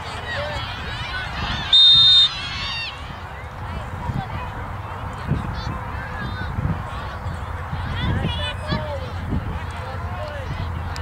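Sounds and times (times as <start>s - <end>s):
faint distant shouts: 0.0s - 4.6s
wind rumbling on microphone: 0.0s - 11.0s.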